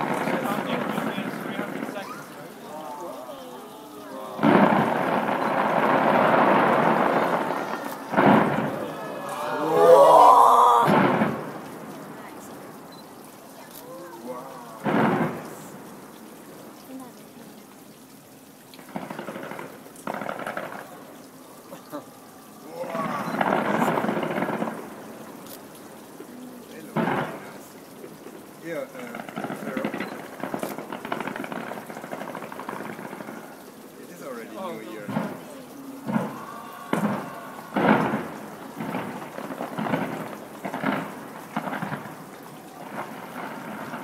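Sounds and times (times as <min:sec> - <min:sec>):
voices exclaiming: 0:00.0 - 0:11.5, 0:13.4 - 0:15.8, 0:20.1 - 0:25.1, 0:34.2 - 0:40.3
fireworks bangs: 0:00.0 - 0:17.5, 0:18.8 - 0:44.0
fireworks crackling rumble: 0:00.0 - 0:44.0
steady hiss: 0:00.0 - 0:44.0.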